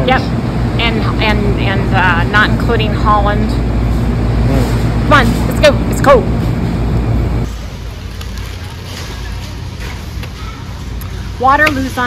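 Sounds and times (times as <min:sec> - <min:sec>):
rumbling warehouse store noise: 0:00.0 - 0:12.0.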